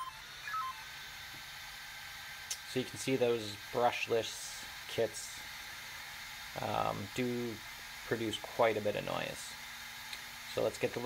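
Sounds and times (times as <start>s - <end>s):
beeps falling in pitch: 0.0s - 0.9s
arming tones: 0.0s - 1.0s
cooling fan whirring: 0.0s - 11.0s.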